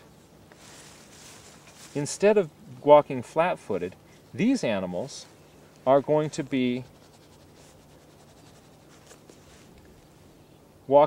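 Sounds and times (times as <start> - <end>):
low steady hum: 0.0 - 11.0
pen scratching on paper: 6.8 - 9.2.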